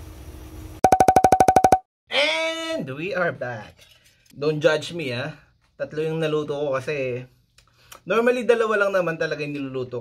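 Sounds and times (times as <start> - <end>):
short electronic beeps: 0.8 - 1.8.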